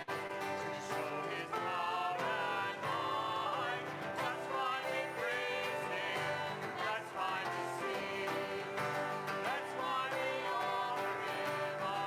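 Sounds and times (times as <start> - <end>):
strummed acoustic guitar: 0.0 - 12.0
voices singing together: 0.0 - 12.0.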